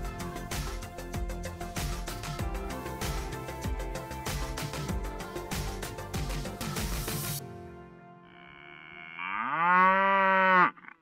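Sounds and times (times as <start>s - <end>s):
cow mooing: 8.2s - 11.0s.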